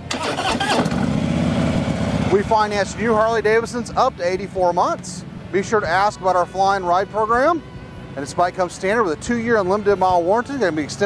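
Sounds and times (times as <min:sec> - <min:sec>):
motorcycle engine starting and idling: 0:00.0 - 0:11.0.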